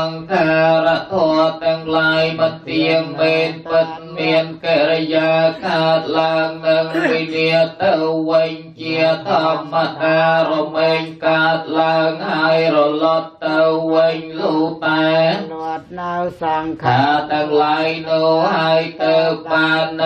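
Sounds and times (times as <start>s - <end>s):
monotone chanting: 0.0s - 20.0s.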